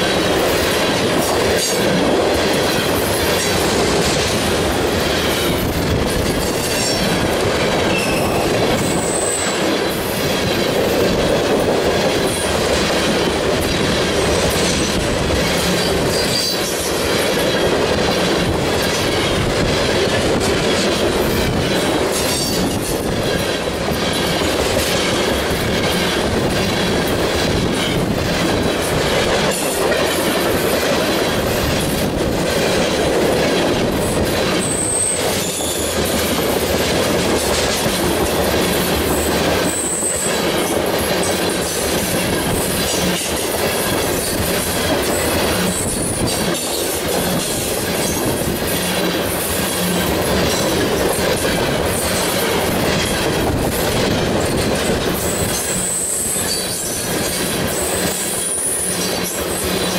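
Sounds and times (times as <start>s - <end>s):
train wheels rumbling on rails: 0.0s - 59.9s
high-pitched wheel squeals: 7.9s - 9.6s, 34.6s - 35.9s.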